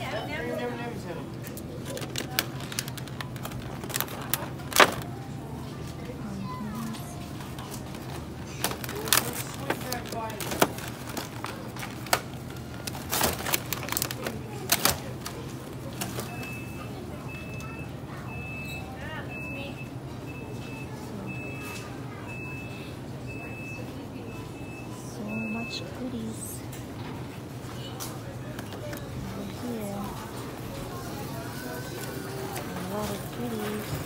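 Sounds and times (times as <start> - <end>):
plastic packs crackling: 1.4 - 5.2, 7.5 - 16.3.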